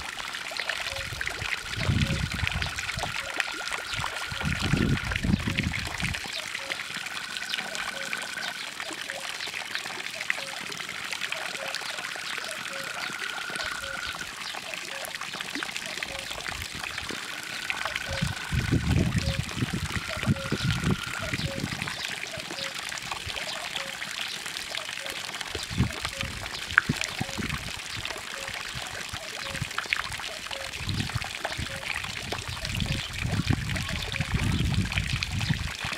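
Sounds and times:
water trickling into a pond: 0.0 - 35.9
faint high steady tone: 11.5 - 14.2.

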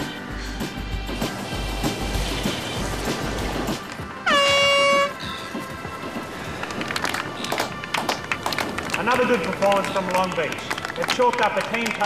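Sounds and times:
background music: 0.0 - 12.0
air horn blast: 4.2 - 5.3.

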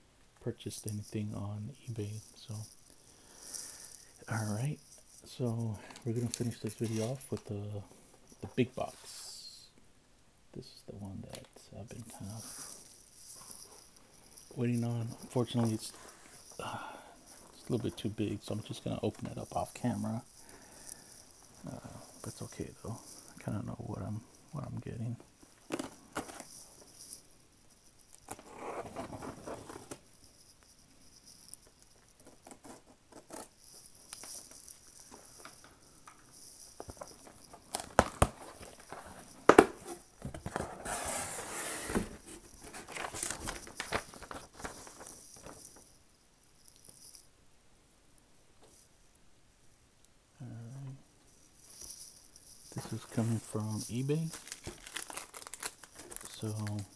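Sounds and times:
packaging rustling and tearing: 25.6 - 26.9, 28.2 - 30.1, 36.8 - 45.8, 52.7 - 56.9.

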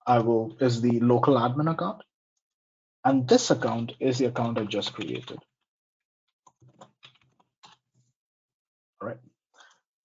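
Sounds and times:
computer keyboard typing: 3.6 - 5.4.

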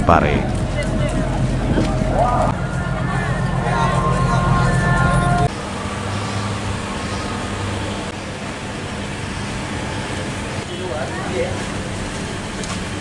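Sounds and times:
loud held tones: 0.0 - 8.1
low hum: 0.0 - 10.6
road traffic noise: 0.0 - 13.0.

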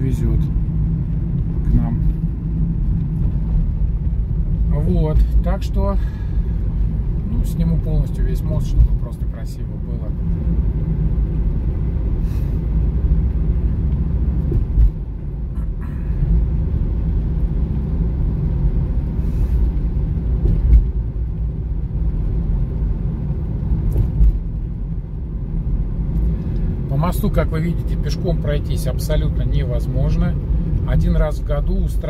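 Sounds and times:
car tyres and engine rumble: 0.0 - 32.0.

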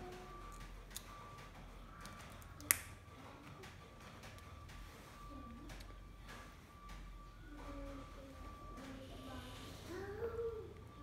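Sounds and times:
green bean snapping: 2.6 - 2.9.

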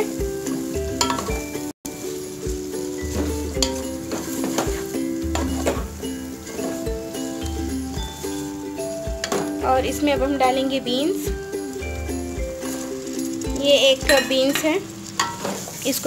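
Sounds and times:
background music with steady beat: 0.0 - 15.5
faint sizzle: 0.0 - 16.0
spatula stirring potatoes in pot: 0.0 - 16.0.

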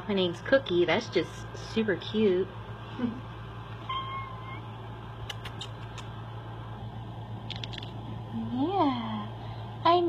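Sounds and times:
steady low hum: 0.0 - 10.0
cat high-pitched call: 3.8 - 4.7.

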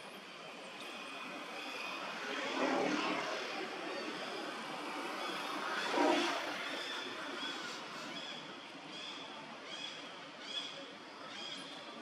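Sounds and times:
distant engine drone: 0.2 - 10.1.

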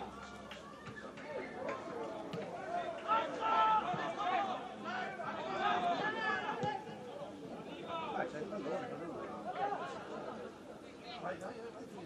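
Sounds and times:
players shouting on a pitch: 0.0 - 11.2.

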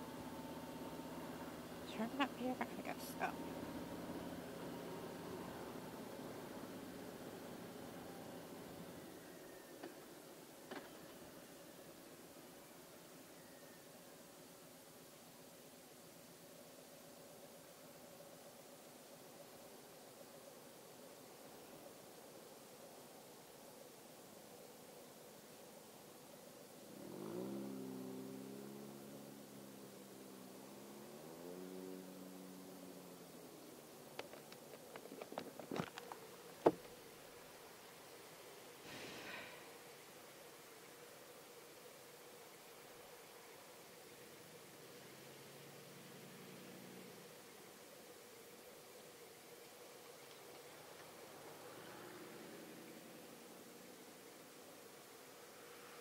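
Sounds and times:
vehicle engine pulling away: 0.0 - 9.6, 26.8 - 33.8, 44.8 - 47.5, 51.0 - 54.5.

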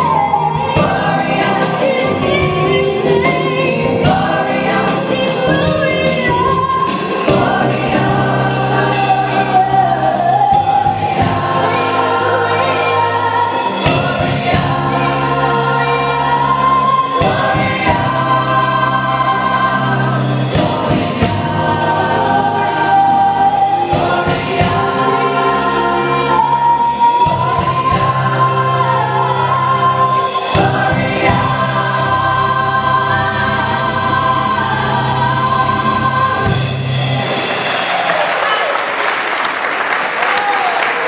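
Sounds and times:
gospel choir singing: 0.0 - 40.2
live band playing: 0.0 - 41.0.

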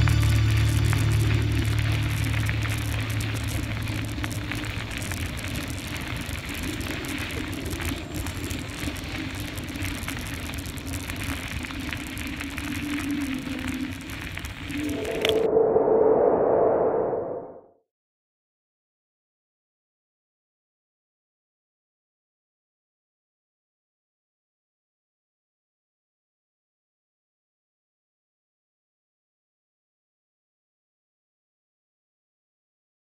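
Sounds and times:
music: 0.0 - 5.0
bicycle tyres rolling on gravel: 0.0 - 15.5
wind hiss: 0.0 - 15.7
dull rushing swell: 11.1 - 17.7.

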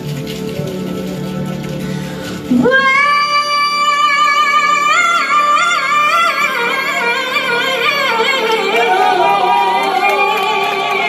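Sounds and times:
quiet live band: 0.0 - 11.0.

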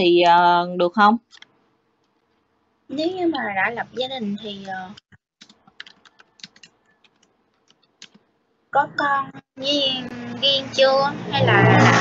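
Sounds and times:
woman speaking: 0.0 - 1.4, 2.9 - 5.0, 8.8 - 12.0
faint clicks and ticks: 4.6 - 8.3.

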